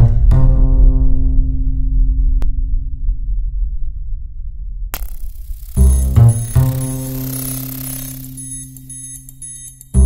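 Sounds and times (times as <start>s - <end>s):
faint high ticking: 5.0s - 10.0s.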